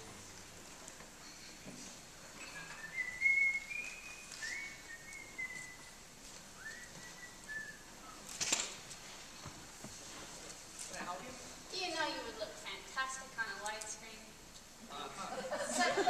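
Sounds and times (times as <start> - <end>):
person whistling: 2.4 - 6.0, 6.6 - 8.2.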